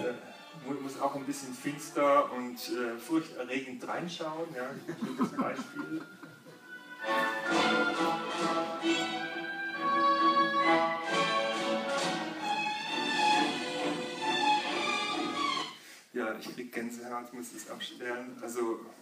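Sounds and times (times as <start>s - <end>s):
recorded orchestra playing: 5.4s - 15.8s.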